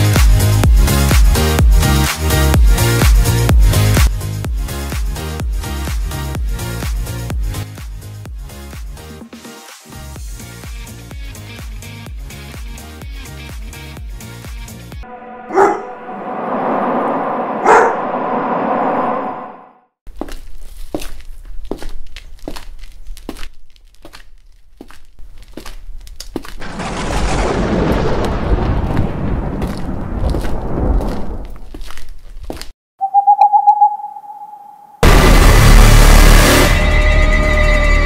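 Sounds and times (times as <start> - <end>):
eerie sustained drone: 15.0 - 19.8, 33.8 - 38.0
low rumble: 15.0 - 19.9, 26.6 - 31.8
dog barking: 15.5 - 16.0, 17.6 - 18.1
beat-driven music: 33.0 - 35.0.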